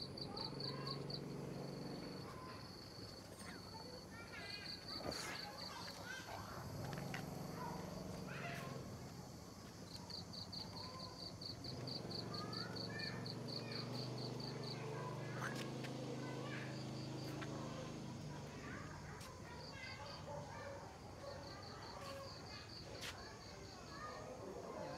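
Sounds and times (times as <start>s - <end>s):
insect chirping in short pulses: 0.0s - 20.3s.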